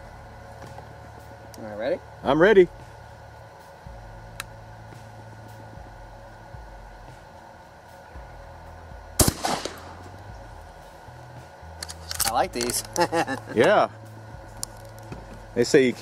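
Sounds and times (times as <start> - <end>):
shotgun shot with echo: 9.2 - 10.0.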